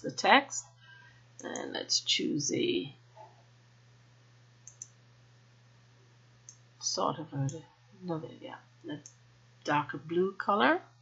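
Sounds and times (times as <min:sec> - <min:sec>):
faint steady hum: 0:00.0 - 0:11.0
computer mouse clicking: 0:04.6 - 0:05.0.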